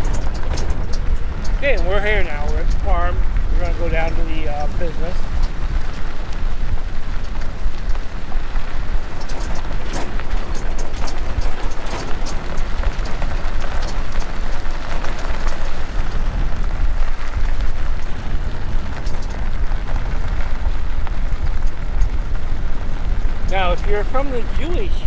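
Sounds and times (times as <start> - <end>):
low rumble: 0.0 - 25.0
tyres crunching on gravel: 0.0 - 25.0.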